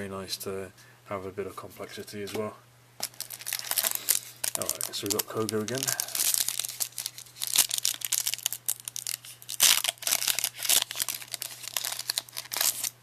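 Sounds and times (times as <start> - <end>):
foil wrapper tearing and crinkling: 3.0 - 13.0.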